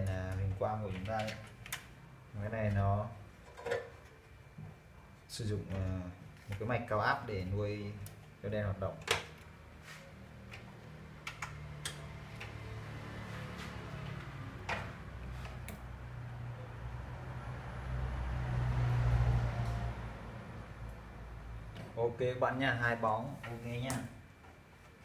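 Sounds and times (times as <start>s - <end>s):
clicks and taps of handling plastic: 0.0s - 1.9s.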